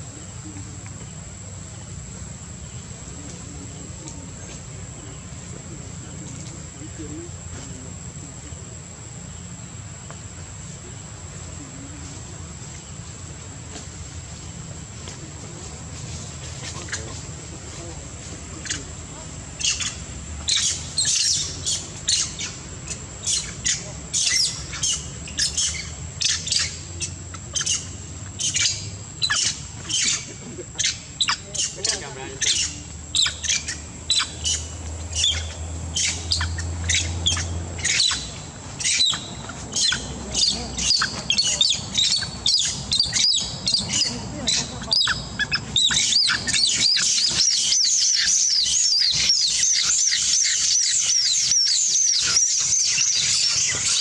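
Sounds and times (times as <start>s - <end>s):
monkeys screaming: 18.6s - 54.0s.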